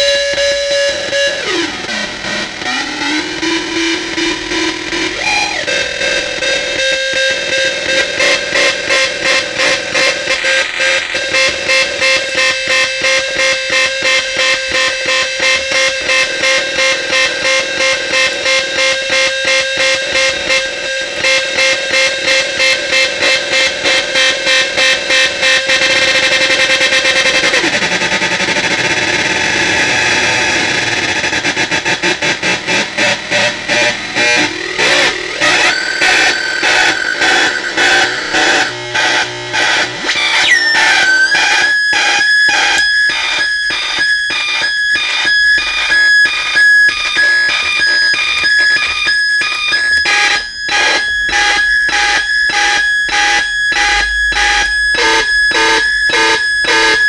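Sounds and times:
harsh buzzing synth drone pulsing: 0.0s - 57.0s.

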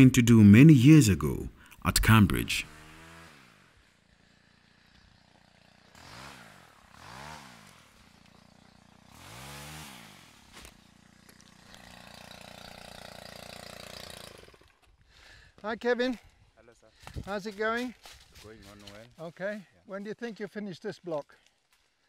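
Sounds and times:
faint small engine revving: 2.6s - 15.3s.

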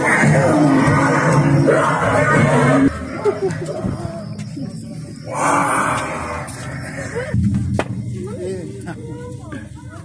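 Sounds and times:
monster growling roar: 0.0s - 3.0s, 5.3s - 7.2s.

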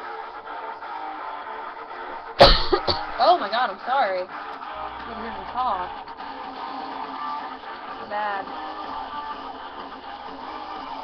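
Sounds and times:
quiet backing music: 0.0s - 11.0s
woman coughing: 2.4s - 3.2s.

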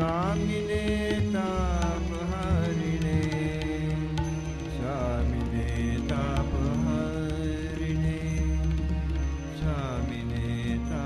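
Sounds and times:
devotional chant music: 0.0s - 11.0s.

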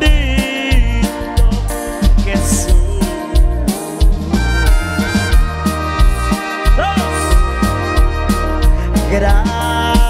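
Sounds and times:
person singing: 0.0s - 5.2s, 6.4s - 7.9s, 8.6s - 10.0s
live band music: 0.0s - 10.0s.

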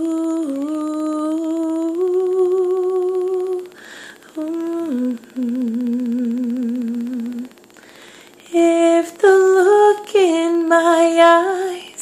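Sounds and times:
quick breath: 3.8s - 4.2s, 7.8s - 8.4s
woman humming: 4.3s - 7.5s.

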